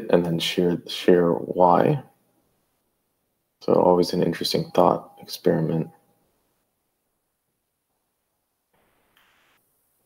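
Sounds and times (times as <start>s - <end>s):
faint soft hiss: 0.0s - 10.0s.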